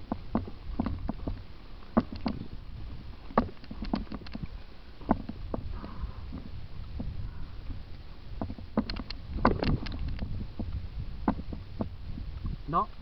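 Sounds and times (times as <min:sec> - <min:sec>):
tyres rumbling on rocky trail: 0:00.0 - 0:13.0
wind on microphone: 0:00.0 - 0:13.0
bike knocks and rattles: 0:03.3 - 0:04.4, 0:05.0 - 0:07.1, 0:08.4 - 0:12.0.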